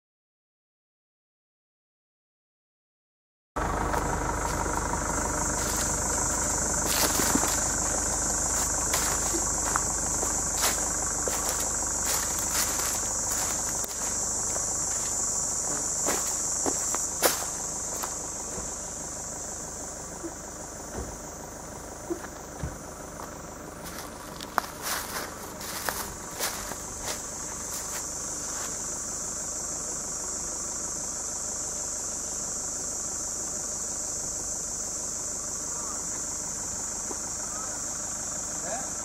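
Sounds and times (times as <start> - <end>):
cicadas buzzing: 3.6 - 39.0
low steady rumble: 3.6 - 39.0
footsteps on dirt: 3.8 - 18.8, 22.1 - 28.8.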